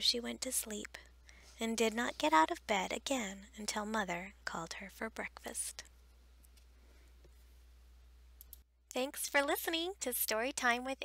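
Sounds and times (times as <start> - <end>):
person speaking: 0.0 - 5.9
low steady hum: 0.0 - 11.0.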